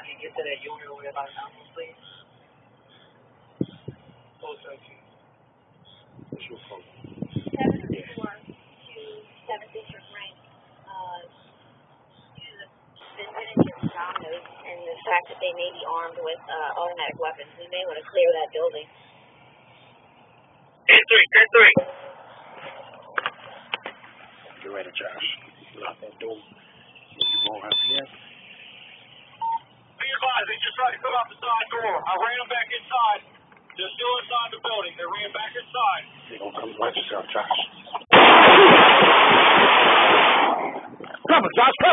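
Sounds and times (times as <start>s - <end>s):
rushing wind on microphone: 6.1s - 8.6s
man's voice: 20.9s - 21.8s, 41.2s - 41.9s.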